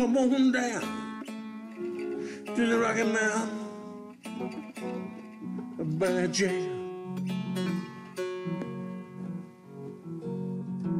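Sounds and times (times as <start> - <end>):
acoustic string band music: 0.0 - 10.9.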